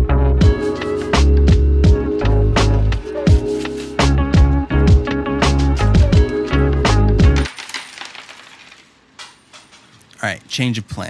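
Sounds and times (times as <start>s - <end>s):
background music with steady beat: 0.0s - 7.5s
coins clinking on a desk: 6.0s - 10.1s.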